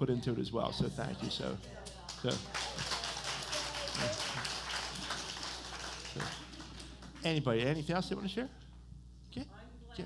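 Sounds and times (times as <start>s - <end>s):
small group clapping: 1.8s - 7.4s.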